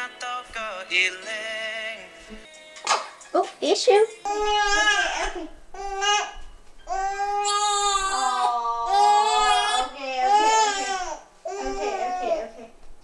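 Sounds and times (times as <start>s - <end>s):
baby crying: 4.3s - 12.6s.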